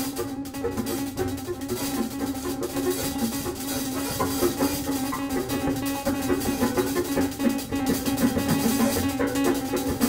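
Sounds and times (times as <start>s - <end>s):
jazz piano trio playing: 0.0s - 10.0s.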